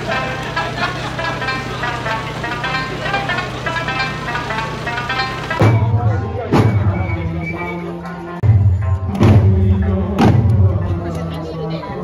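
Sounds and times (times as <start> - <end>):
plucked lute notes: 0.0 - 11.4.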